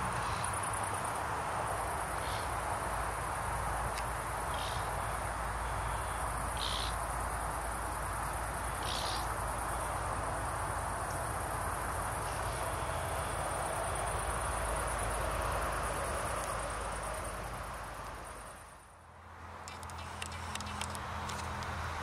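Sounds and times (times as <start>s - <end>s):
crickets chirring: 0.0s - 22.0s.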